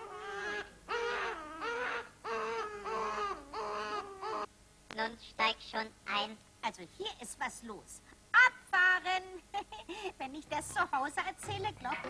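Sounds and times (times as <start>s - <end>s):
baby-like voice wailing: 0.0s - 4.5s.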